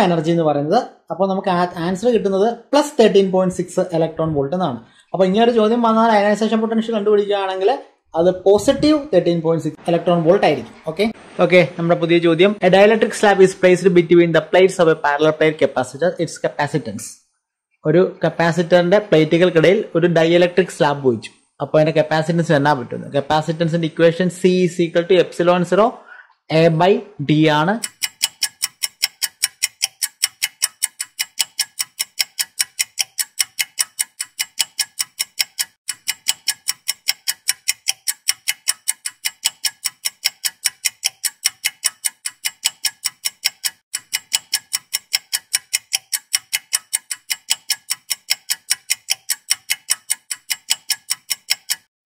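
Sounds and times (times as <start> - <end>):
clock ticking: 5.0 - 9.1, 18.2 - 25.4, 26.5 - 52.0.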